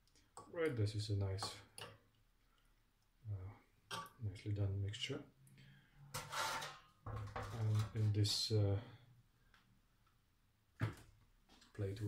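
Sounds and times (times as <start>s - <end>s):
metal tray scraping on stovetop: 6.1s - 8.1s.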